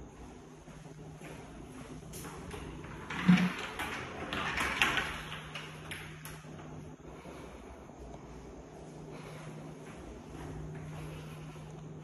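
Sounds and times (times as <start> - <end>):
door panels rattling and clicking: 2.6 - 6.2.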